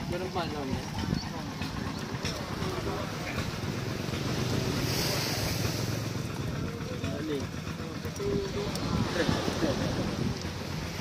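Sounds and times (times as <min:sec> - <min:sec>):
sea: 0:00.0 - 0:11.0
wind on microphone: 0:08.2 - 0:11.0.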